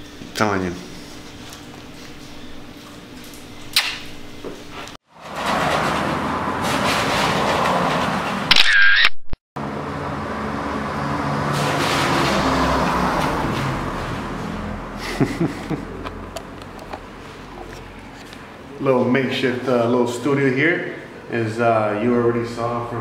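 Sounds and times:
camera shutter click: 8.5s - 9.2s.

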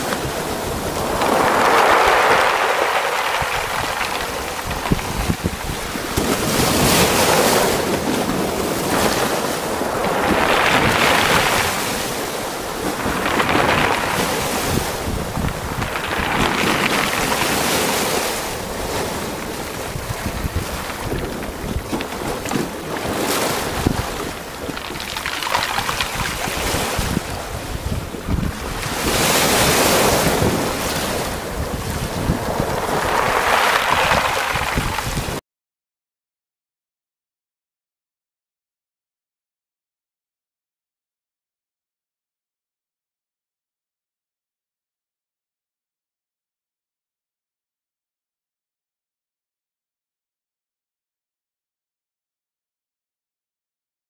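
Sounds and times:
sea water splashing along a hull: 0.0s - 35.4s
wind buffeting the microphone: 0.0s - 35.4s.

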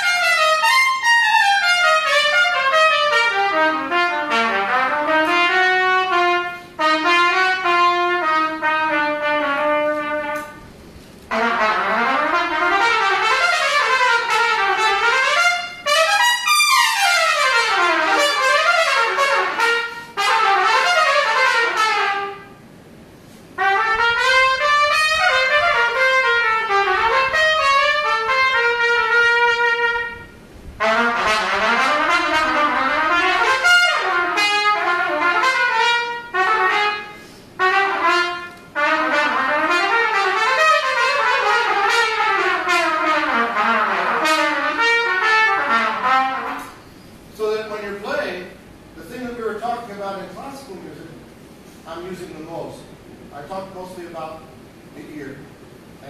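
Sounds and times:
trumpet playing fast runs: 0.0s - 10.7s, 11.3s - 22.6s, 23.5s - 46.8s.

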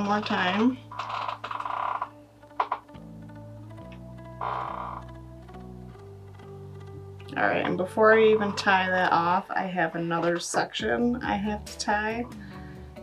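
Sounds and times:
soft guitar music: 0.0s - 9.4s.

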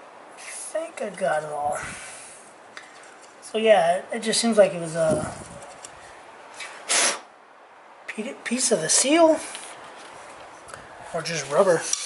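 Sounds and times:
puff of breath: 6.5s - 7.3s.

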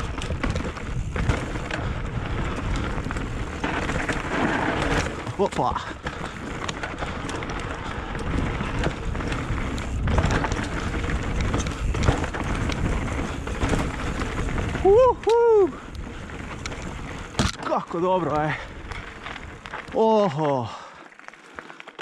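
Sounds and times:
bike tyres on gravel: 0.0s - 22.0s
wheels rattling on stones: 0.0s - 22.0s.

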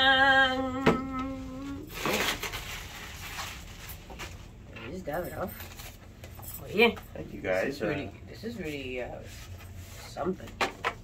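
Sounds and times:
person singing ta-da: 0.0s - 1.8s
tissue paper rustling: 1.8s - 4.6s.

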